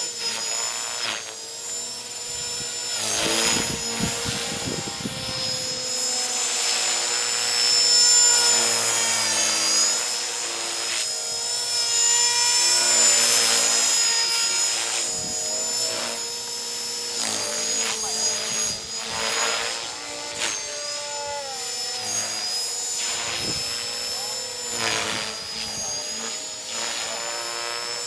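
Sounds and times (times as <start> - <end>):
model helicopter rotor whine: 0.0 - 28.0.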